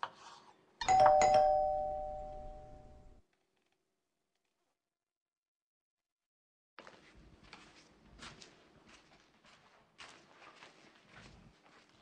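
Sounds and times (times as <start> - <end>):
two-note doorbell chime: 0.8 - 3.2.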